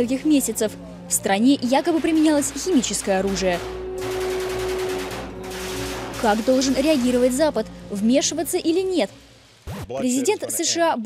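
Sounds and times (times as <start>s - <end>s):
faint music: 0.0s - 11.0s
rapid rifle fire: 3.2s - 7.2s.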